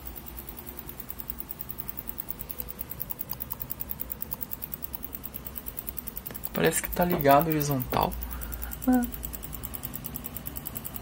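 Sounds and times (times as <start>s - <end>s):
television ticking fast: 0.0s - 11.0s.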